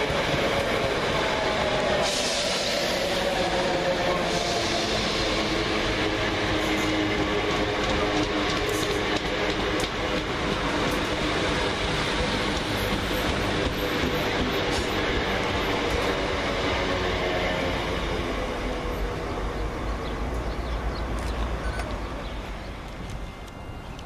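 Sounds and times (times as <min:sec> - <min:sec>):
train running noise: 0:00.0 - 0:24.0.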